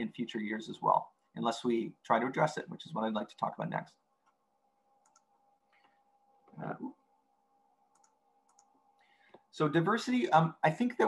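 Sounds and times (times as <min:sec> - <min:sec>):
faint electrical hum: 0:00.0 - 0:11.0
faint computer clicks: 0:05.0 - 0:05.9, 0:07.9 - 0:08.7.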